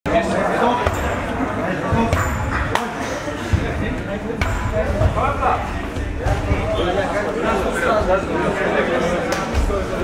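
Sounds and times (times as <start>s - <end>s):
indistinct talk of people: 0.1s - 10.0s.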